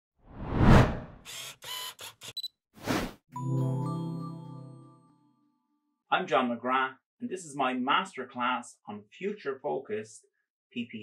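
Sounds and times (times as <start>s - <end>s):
rising whoosh: 0.3s - 1.2s.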